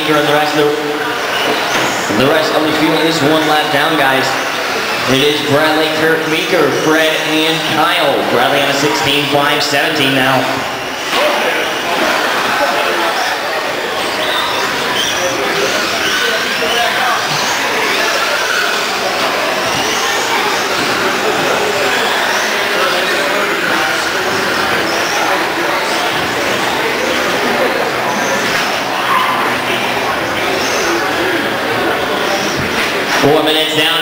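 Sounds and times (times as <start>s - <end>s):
voices in a hall: 0.0s - 34.0s.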